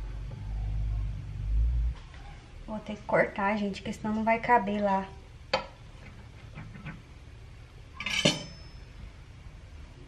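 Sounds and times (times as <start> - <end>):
knife clinking on stone countertop: 8.0 - 8.8.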